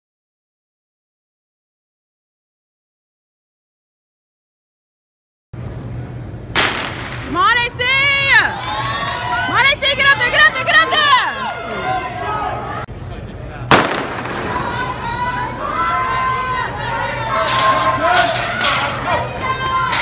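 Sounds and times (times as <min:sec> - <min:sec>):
starter's pistol shot: 0:06.6 - 0:07.2, 0:13.7 - 0:14.6
spectators yelling: 0:07.4 - 0:12.9, 0:14.4 - 0:20.0.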